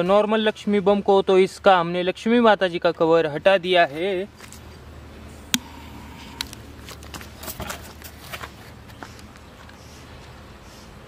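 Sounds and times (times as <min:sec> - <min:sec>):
footsteps on gritty ground: 0:03.9 - 0:04.9, 0:06.0 - 0:10.5.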